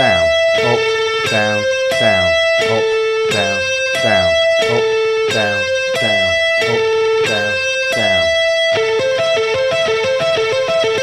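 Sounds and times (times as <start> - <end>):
electric guitar picking arpeggio: 0.0 - 11.0.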